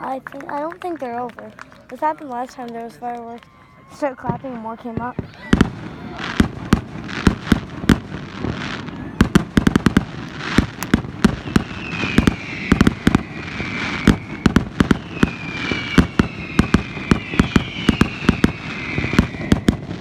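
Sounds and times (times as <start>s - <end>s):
fireworks bangs and crackles: 0.0s - 20.0s
falling high whistle: 11.2s - 20.0s.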